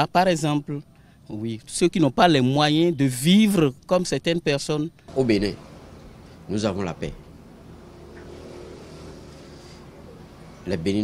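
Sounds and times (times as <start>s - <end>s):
low background noise: 0.0s - 11.0s.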